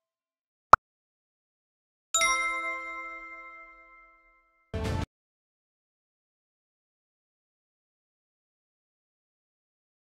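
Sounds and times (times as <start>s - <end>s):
notification bell ding: 2.2s - 4.3s.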